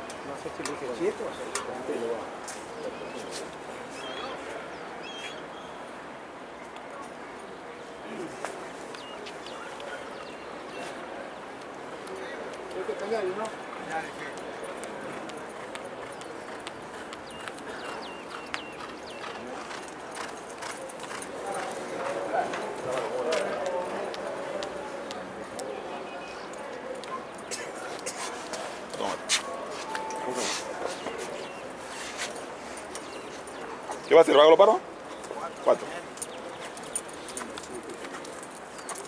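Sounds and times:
outdoor background noise: 0:00.0 - 0:39.0
horse hooves galloping on dirt: 0:14.3 - 0:25.6
indistinct voices: 0:21.4 - 0:31.8.

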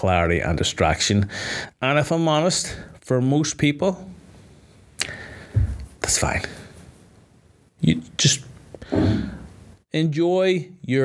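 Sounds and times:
man's sharp intake of breath: 0:01.3 - 0:01.8, 0:05.0 - 0:05.7, 0:08.8 - 0:09.6
puff of air against microphone: 0:08.8 - 0:09.6.

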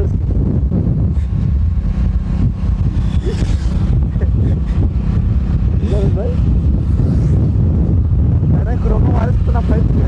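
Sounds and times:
motorcycle engine and road rumble: 0:00.0 - 0:10.0
wind buffeting microphone: 0:00.0 - 0:10.0.

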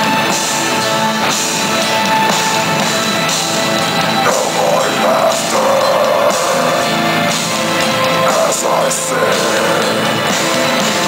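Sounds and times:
distorted electric guitars: 0:00.0 - 0:11.0
drums and cymbals: 0:00.0 - 0:11.0.

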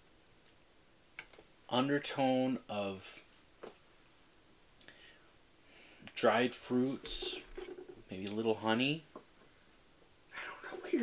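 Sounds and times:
faint breathing: 0:04.8 - 0:06.2.

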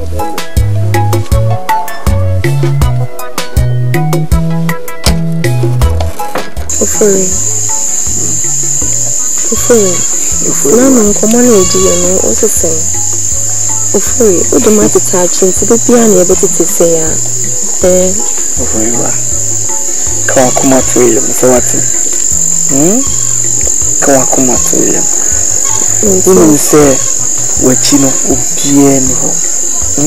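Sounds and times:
background music with bass line: 0:00.0 - 0:24.2
high-pitched insect trill: 0:06.7 - 0:30.0
voices: 0:06.7 - 0:30.0.

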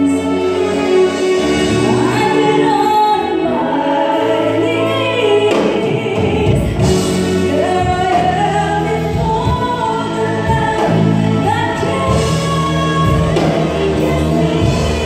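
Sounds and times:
live band with electric bass: 0:00.0 - 0:15.0
woman singing through microphone: 0:01.8 - 0:15.0.

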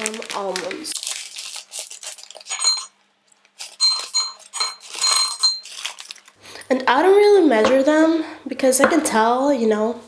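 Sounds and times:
almonds clinking in ceramic bowl: 0:02.4 - 0:03.0, 0:03.8 - 0:06.0
bowl ringing: 0:03.8 - 0:05.7.

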